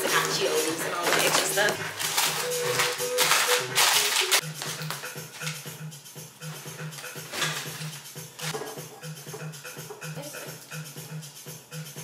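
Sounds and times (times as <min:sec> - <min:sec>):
chip bags crinkling: 0:00.0 - 0:05.5, 0:07.0 - 0:08.2
background music: 0:00.0 - 0:12.0.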